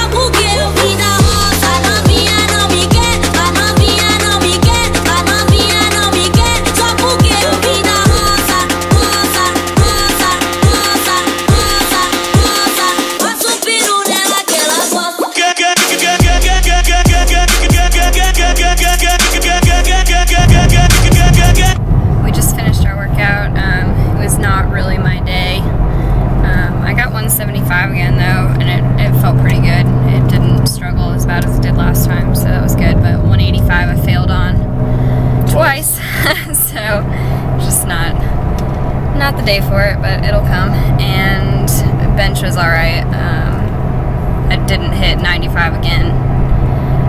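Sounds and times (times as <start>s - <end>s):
car engine and road noise: 0.0s - 13.2s, 16.3s - 47.0s
woman talking: 6.8s - 8.5s, 22.2s - 25.7s, 26.4s - 34.6s, 35.4s - 38.3s, 39.1s - 43.7s, 44.5s - 46.2s.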